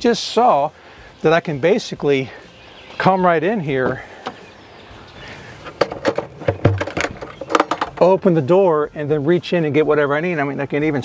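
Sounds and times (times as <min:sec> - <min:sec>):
metal lid latch clicks and knocks: 0:05.7 - 0:08.2.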